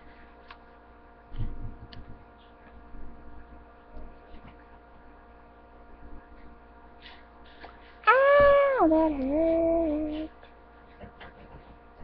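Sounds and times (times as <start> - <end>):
electrical hum: 0.0 - 12.0
woman crying out in pain: 8.1 - 9.8.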